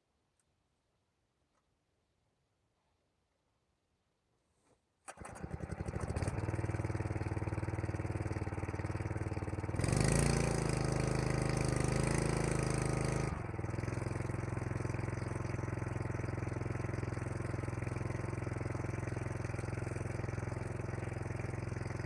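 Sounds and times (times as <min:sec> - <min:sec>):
petrol engine sputtering and running: 0:05.1 - 0:22.0.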